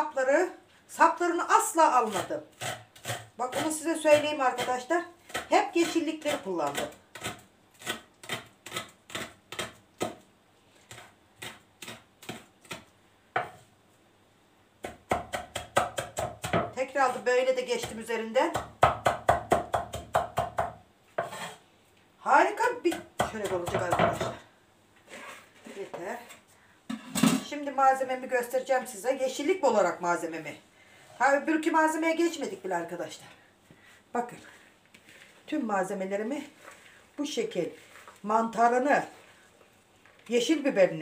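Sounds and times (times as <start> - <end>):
knife chopping on wooden board: 2.1 - 10.2, 10.9 - 13.6, 14.8 - 16.8, 17.8 - 21.6, 22.9 - 24.4.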